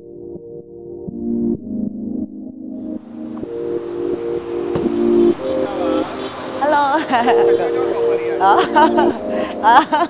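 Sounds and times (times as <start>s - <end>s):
background music with held chords: 0.0s - 10.0s
car door thud: 4.7s - 5.0s.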